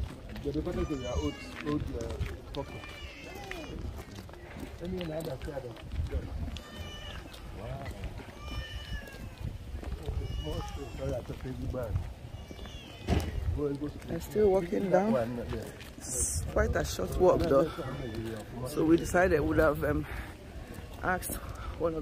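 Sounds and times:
voices talking: 0:00.0 - 0:22.0.

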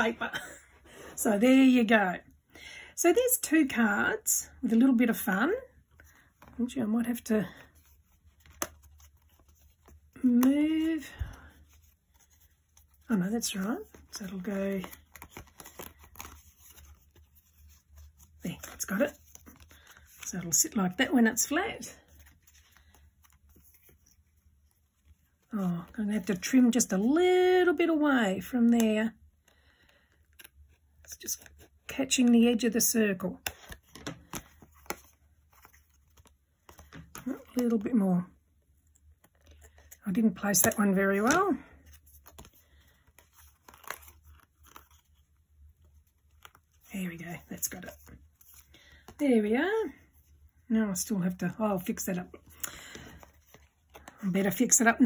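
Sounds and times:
paper card rustling: 0:06.0 - 0:26.9, 0:30.3 - 0:37.9, 0:38.9 - 0:49.2, 0:51.3 - 0:55.0.

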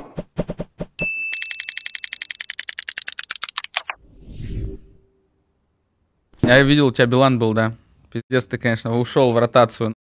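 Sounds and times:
rapid even ticking: 0:01.4 - 0:03.8
typewriter-like clicks: 0:01.4 - 0:03.8.

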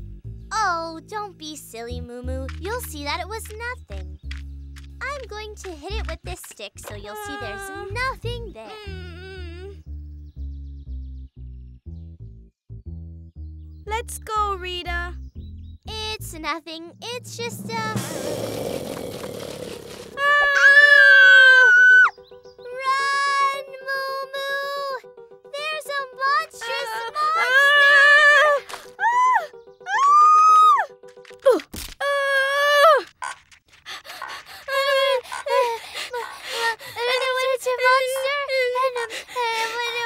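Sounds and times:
background music: 0:00.0 - 0:33.0
cartoon characters wailing: 0:20.2 - 0:22.1, 0:26.7 - 0:30.8.

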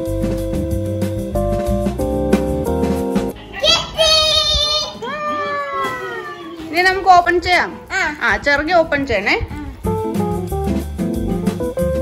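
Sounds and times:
child calling out: 0:03.4 - 0:06.6
guitar music: 0:09.6 - 0:12.0.

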